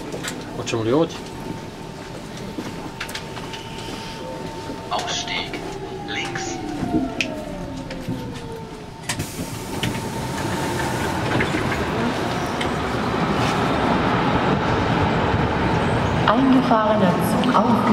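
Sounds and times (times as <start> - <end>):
electric train braking whine: 2.8 - 12.6
steady high tone: 3.6 - 9.0.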